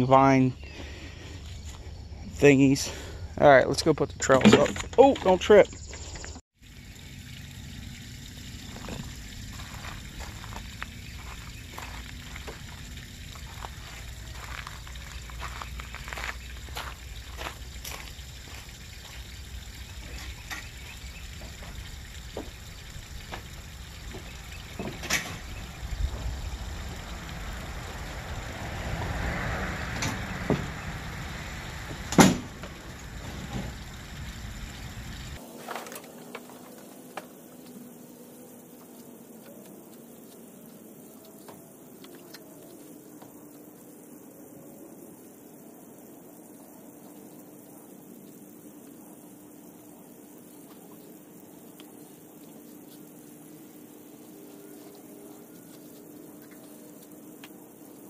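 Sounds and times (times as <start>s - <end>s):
low steady rumble: 6.6s - 35.4s.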